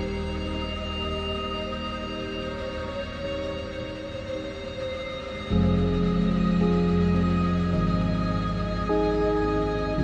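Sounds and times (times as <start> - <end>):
music of held chords: 0.0 - 10.0.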